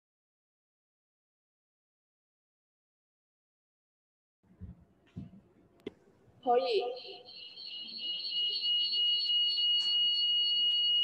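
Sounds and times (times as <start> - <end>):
high-pitched ringing tone: 6.5 - 11.0.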